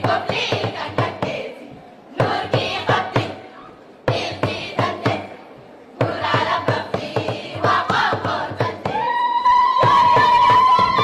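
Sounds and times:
rhythmic beat: 0.0 - 1.5, 2.2 - 3.4, 4.1 - 5.4, 6.0 - 9.0
girls singing folk song: 0.0 - 5.4, 6.0 - 9.1.

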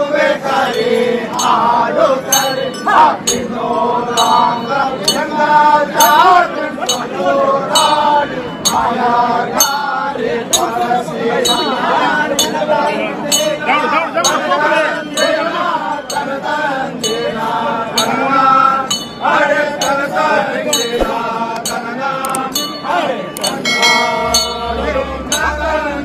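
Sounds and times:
men chanting: 0.0 - 26.0
sharp metallic clinks: 20.8 - 25.5.

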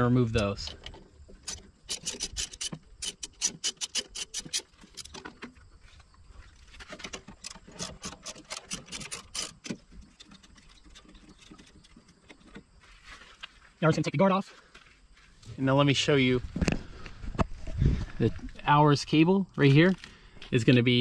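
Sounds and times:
small metal clicks: 0.3 - 5.5, 6.8 - 12.6
ratchet wrench clicking: 1.5 - 5.2, 7.4 - 9.8.

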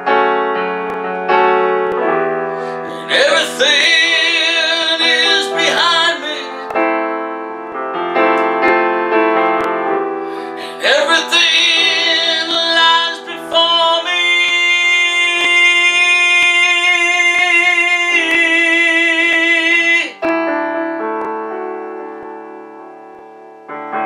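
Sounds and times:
piano accompaniment: 0.0 - 24.0
man singing held notes: 2.8 - 6.7, 10.6 - 20.2.

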